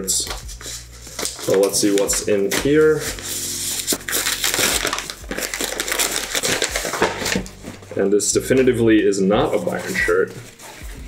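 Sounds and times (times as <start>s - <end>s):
paper tearing and crumpling: 0.2s - 8.6s, 9.5s - 11.0s.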